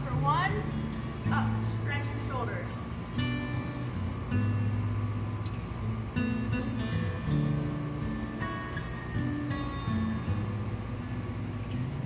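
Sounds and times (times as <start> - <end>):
acoustic guitar chords ringing: 0.0 - 12.0.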